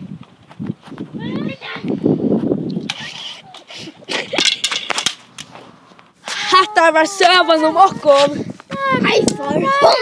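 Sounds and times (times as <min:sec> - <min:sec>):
boy crying out: 0:06.2 - 0:10.0
boy shouting roughly: 0:06.2 - 0:10.0.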